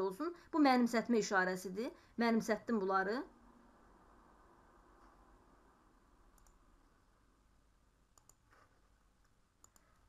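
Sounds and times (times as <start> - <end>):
faint clicks: 6.3 - 6.6, 8.1 - 10.0.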